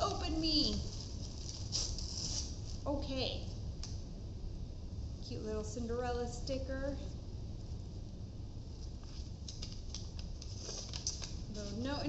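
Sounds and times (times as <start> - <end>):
paper rustling: 0.0 - 2.8, 8.8 - 12.0
hissy paper crinkle: 0.0 - 3.1, 8.7 - 12.0
steady low hum: 0.0 - 12.0.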